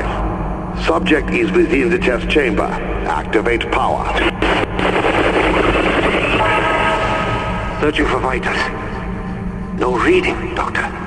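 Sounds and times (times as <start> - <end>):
dense crackling noise: 0.0 - 11.0
low bass drone: 0.0 - 11.0
steady electric buzz: 0.0 - 11.0.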